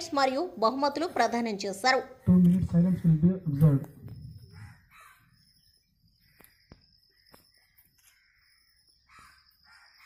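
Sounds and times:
birds calling faintly: 0.0 - 10.0
person speaking: 2.2 - 4.6.

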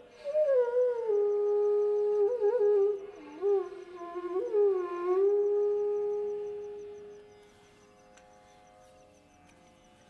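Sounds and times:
bamboo flute: 0.0 - 7.7
faint steady drone: 0.0 - 10.0.

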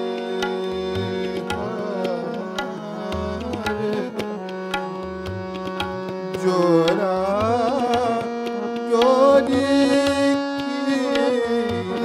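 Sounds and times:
harmonium drone: 0.0 - 12.0
tabla strokes: 0.0 - 12.0
man singing: 1.3 - 4.2, 6.2 - 12.0.

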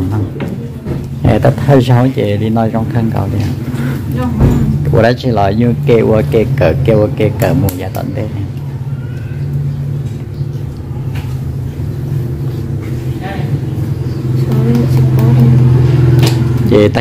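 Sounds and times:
low motor hum: 0.0 - 17.0.

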